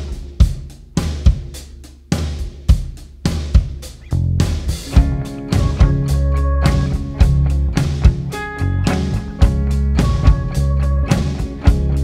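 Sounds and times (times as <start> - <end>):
drum kit rock beat: 0.0 - 12.0.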